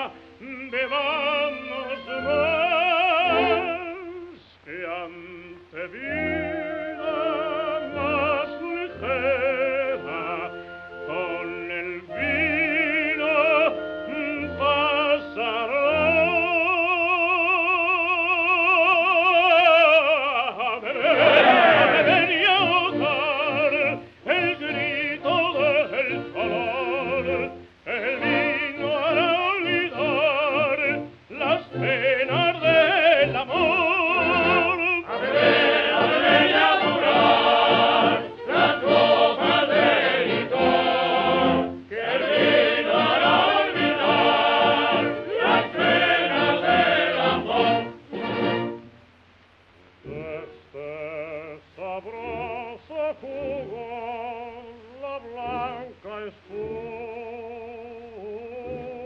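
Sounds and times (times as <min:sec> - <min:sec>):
operatic baritone singing: 0:00.0 - 0:48.8, 0:50.0 - 0:59.0.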